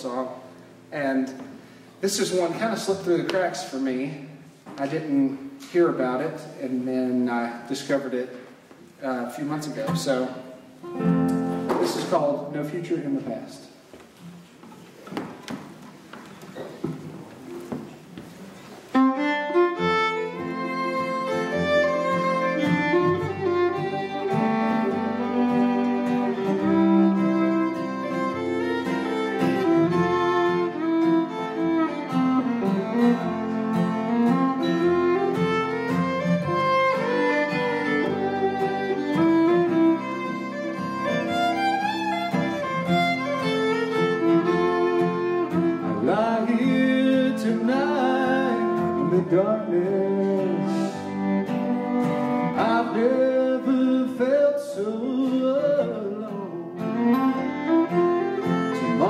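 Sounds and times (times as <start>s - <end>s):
fiddle melody: 9.0s - 13.5s, 18.6s - 54.5s, 55.5s - 59.0s
strummed acoustic guitar: 9.6s - 12.4s, 18.9s - 59.0s.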